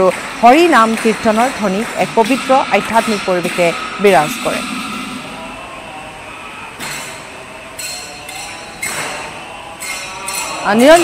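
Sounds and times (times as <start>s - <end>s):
prayer hall background noise: 0.0s - 11.0s.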